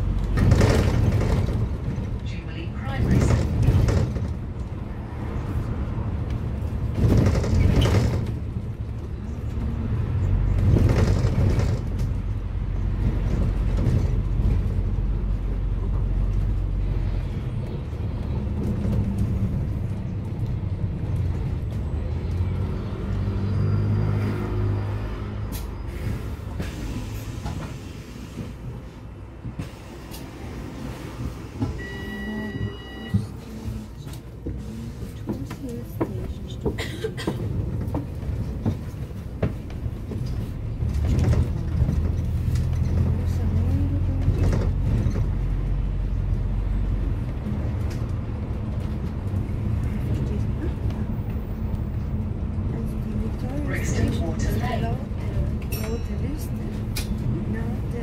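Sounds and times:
bus engine and road rumble: 0.0 - 58.0
short high beep: 31.8 - 33.3.

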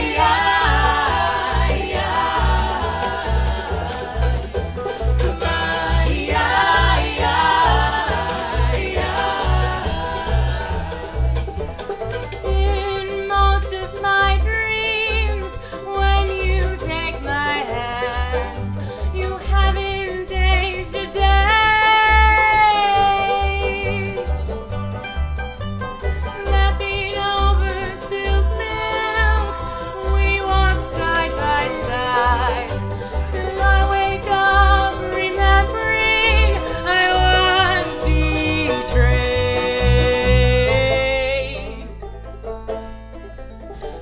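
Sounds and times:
voices singing in harmony: 0.0 - 11.6, 20.3 - 24.2, 26.5 - 41.9
banjo picking: 0.0 - 44.0
double bass plucking: 0.0 - 44.0.

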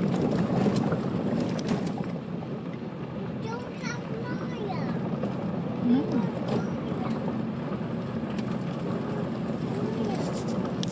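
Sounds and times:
gravel ticks: 0.0 - 10.9
tyres rumbling on gravel: 0.0 - 10.9.

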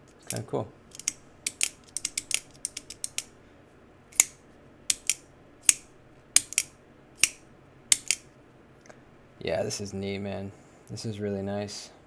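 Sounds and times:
folding knife blade clicking: 0.3 - 3.3, 4.1 - 8.2.

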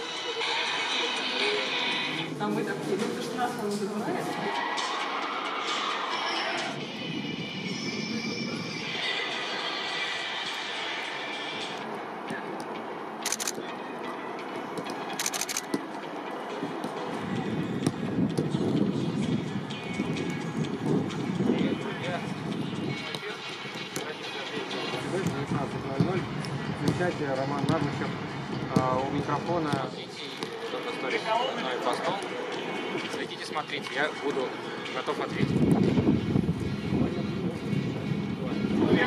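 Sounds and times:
music: 0.0 - 39.0.

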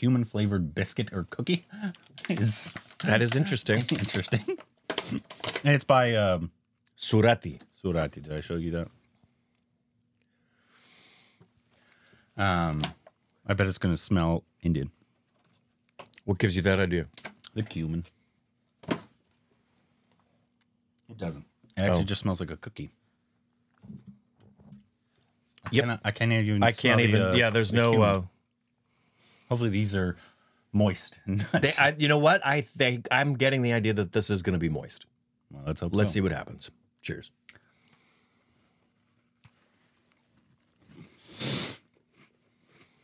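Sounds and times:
man murmuring: 1.5 - 5.3, 26.6 - 28.2, 31.3 - 32.0
people chewing biscuits: 37.5 - 43.0
burst of hissing noise: 41.2 - 41.8.

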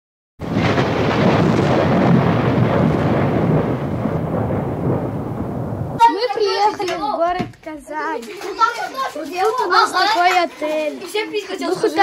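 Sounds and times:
loud noisy rumble: 0.4 - 6.0.

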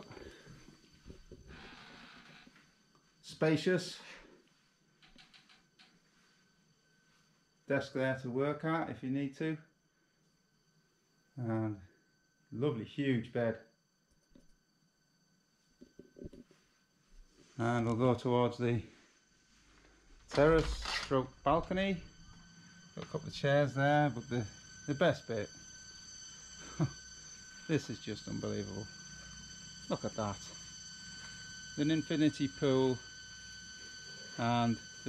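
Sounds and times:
faint high whine: 0.0 - 35.0.

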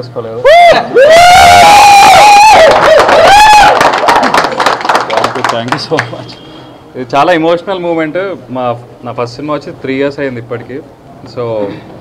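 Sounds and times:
shrill whooping cheer: 0.4 - 4.5
crowd clapping: 2.2 - 6.4.

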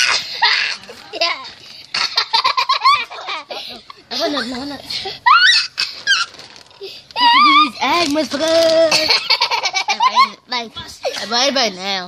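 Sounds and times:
children laughing and squealing: 0.0 - 8.0, 8.7 - 11.3.

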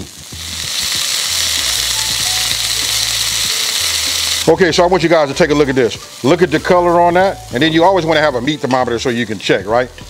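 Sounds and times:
chicken sizzling in hot oil: 0.0 - 10.0.

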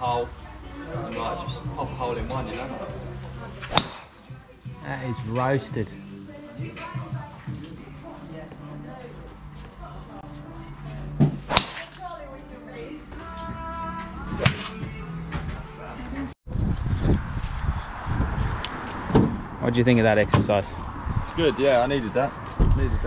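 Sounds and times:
golf club striking balls: 3.6 - 4.4, 11.2 - 12.0.

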